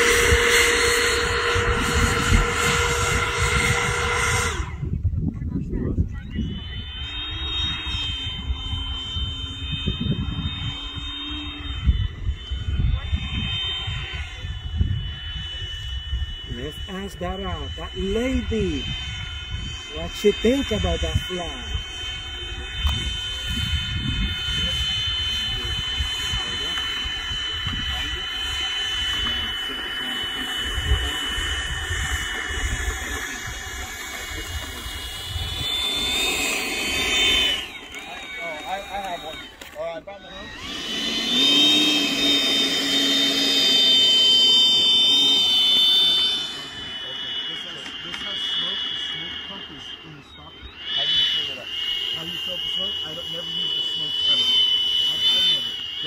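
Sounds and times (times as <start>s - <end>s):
electric ducted fan whining: 0.0s - 56.0s
wind rumbling on microphone: 0.0s - 56.0s.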